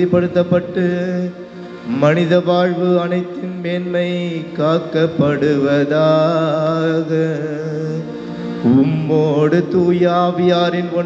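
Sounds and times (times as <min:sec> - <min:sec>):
priest chanting over microphone: 0:01.9 - 0:07.3.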